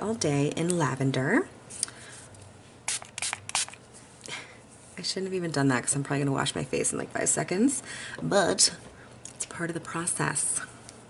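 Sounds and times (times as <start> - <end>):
spray bottle spritzes: 2.9 - 3.8.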